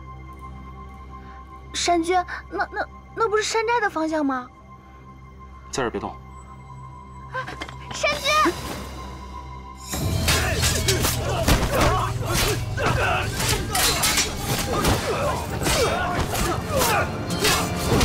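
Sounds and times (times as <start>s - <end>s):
dramatic music over low drone: 0.0s - 18.0s
sword blades clashing: 10.0s - 18.0s
fighters shouting: 10.1s - 18.0s.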